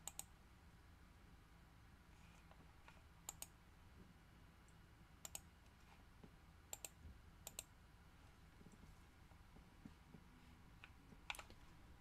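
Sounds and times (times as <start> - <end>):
computer input clicks: 0.0 - 0.3, 3.3 - 3.5, 5.2 - 5.5, 6.7 - 7.7.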